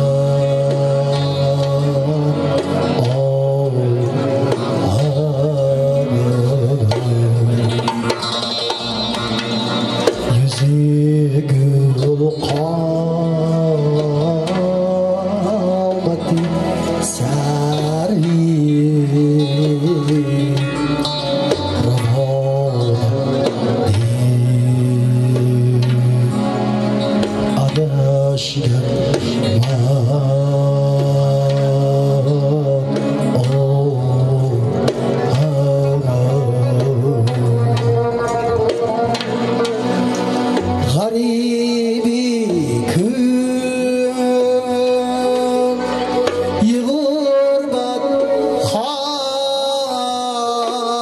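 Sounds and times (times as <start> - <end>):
man singing long notes: 0.0 - 51.0
plucked lute: 0.0 - 51.0
steady bass line: 0.0 - 51.0
drum beat: 4.5 - 10.9.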